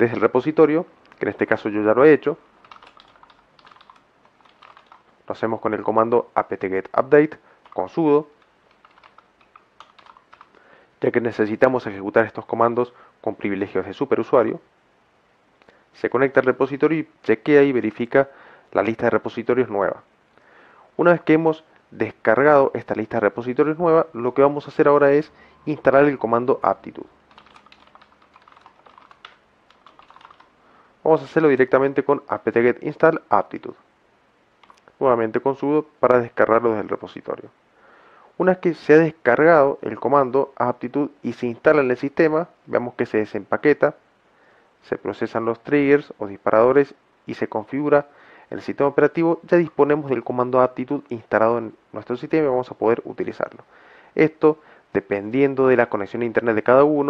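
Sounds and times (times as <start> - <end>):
faint keyboard keystrokes: 2.6 - 5.0, 8.4 - 10.6, 27.3 - 30.5
keyboard key clicks: 8.7 - 10.5.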